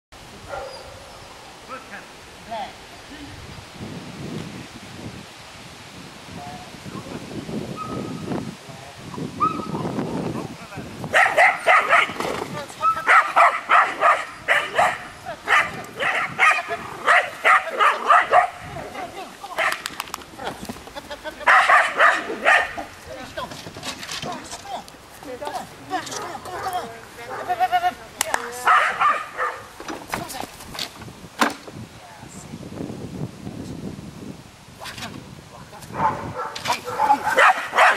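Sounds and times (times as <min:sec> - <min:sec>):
dog barking short high barks: 0:11.2 - 0:12.2, 0:13.0 - 0:18.6, 0:21.5 - 0:22.8, 0:28.7 - 0:29.7, 0:36.0 - 0:37.9.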